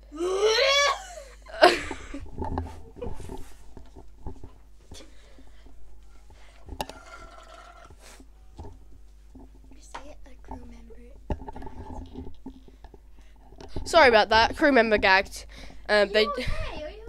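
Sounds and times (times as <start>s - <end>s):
rustling and small knocks: 1.7s - 17.0s.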